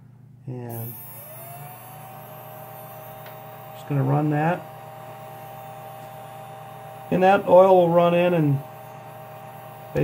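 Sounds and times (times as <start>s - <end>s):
small electric motor humming: 0.7s - 10.0s.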